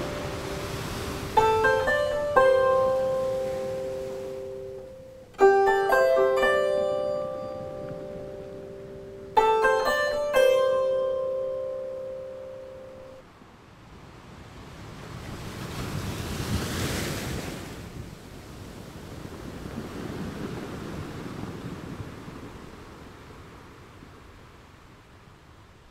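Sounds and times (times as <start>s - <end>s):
sea surf washing in: 0.0s - 13.1s, 13.7s - 25.2s
plucked harp notes: 0.0s - 13.2s.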